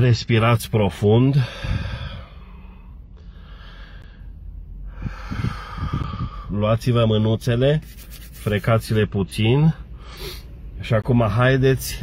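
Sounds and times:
man taking a deep breath: 0:01.4 - 0:06.5, 0:09.9 - 0:10.7.

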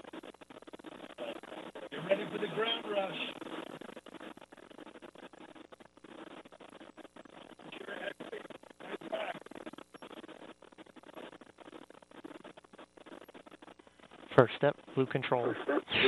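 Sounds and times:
crackly radio audio: 0:00.0 - 0:16.0.

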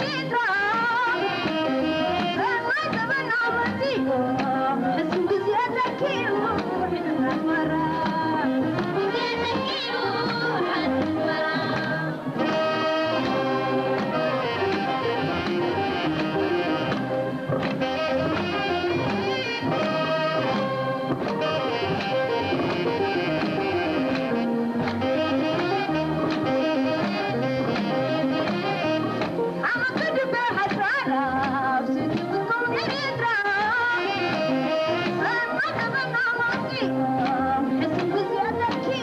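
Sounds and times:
live band with saxophone and trumpet: 0:00.0 - 0:39.0.

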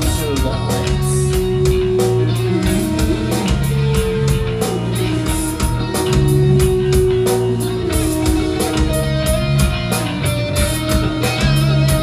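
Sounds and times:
drum kit beat: 0:00.0 - 0:12.0
electric guitars: 0:00.0 - 0:12.0.

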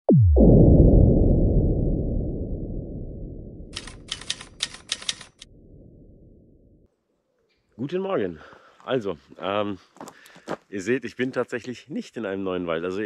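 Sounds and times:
deep synthesized boom: 0:00.0 - 0:03.8, 0:05.5 - 0:06.8
typewriter key clicks: 0:03.8 - 0:05.4.

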